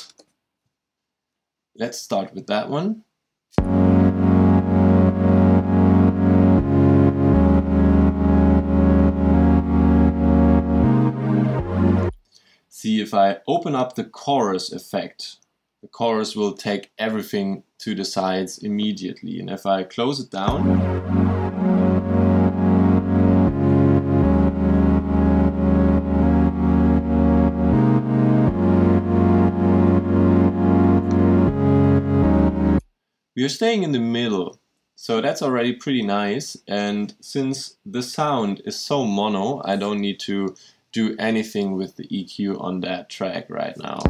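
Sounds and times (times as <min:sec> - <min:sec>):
pulsing synth pad chords: 0:03.6 - 0:12.2, 0:20.5 - 0:32.8.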